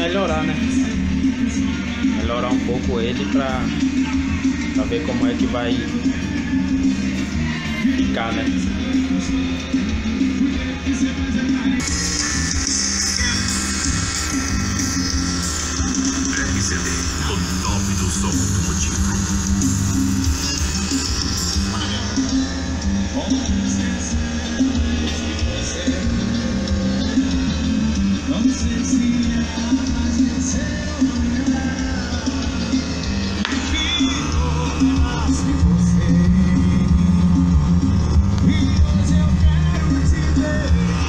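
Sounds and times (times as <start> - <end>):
loud music with heavy bass: 0.0 - 41.0.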